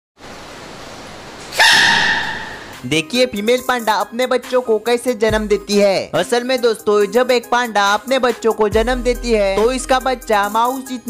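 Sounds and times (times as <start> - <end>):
background hiss: 0.2 - 3.0
panda cub sneezing: 1.5 - 2.8.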